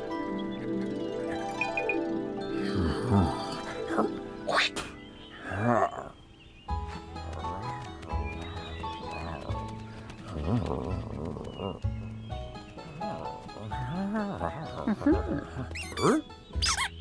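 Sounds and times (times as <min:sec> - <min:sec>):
cartoon background music: 0:00.0 - 0:06.1, 0:06.7 - 0:17.0.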